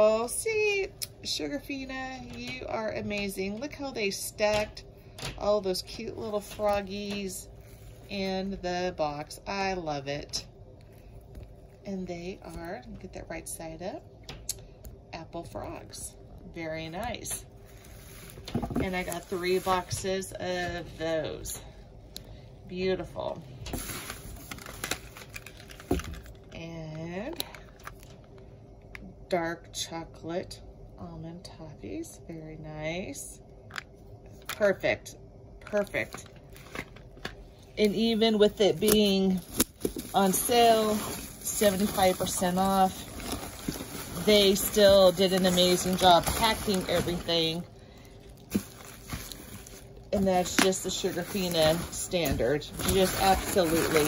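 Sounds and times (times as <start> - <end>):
hands rummaging through packing paper: 17.1 - 21.0, 23.7 - 26.3, 35.7 - 54.0.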